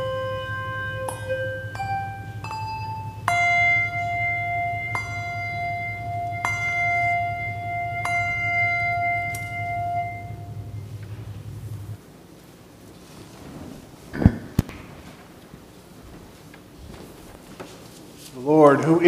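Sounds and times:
handbells ringing: 0.0s - 11.0s
steady low hum: 0.0s - 19.0s.

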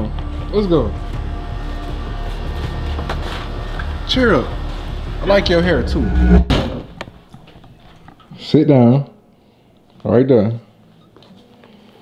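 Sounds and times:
background music with low bass: 0.0s - 7.3s.

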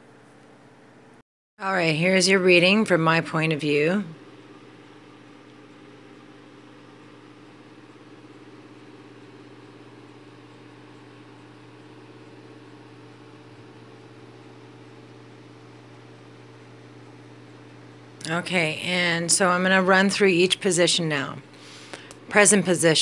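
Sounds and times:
low mechanical hum: 0.0s - 23.0s.

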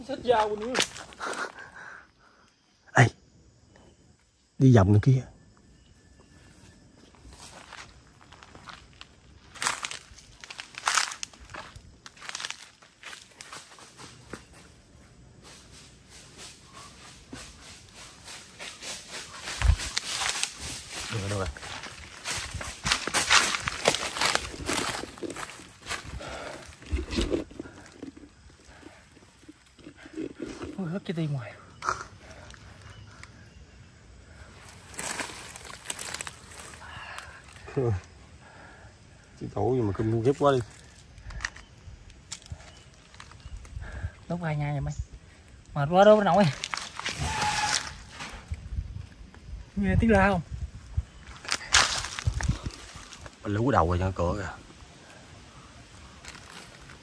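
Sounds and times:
dry leaves crunching: 7.4s - 14.3s, 15.5s - 28.3s, 34.6s - 36.8s, 46.3s - 48.1s, 51.3s - 53.4s, 56.1s - 57.0s.

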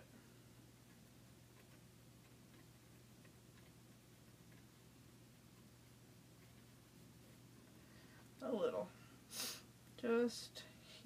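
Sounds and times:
low steady hum: 0.0s - 11.0s
pencil tip ticking on paper: 0.8s - 4.9s.

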